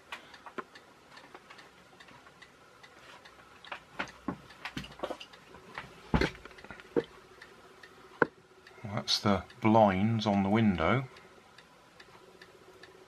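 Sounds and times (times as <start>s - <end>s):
faint handling clicks and taps: 0.0s - 8.4s.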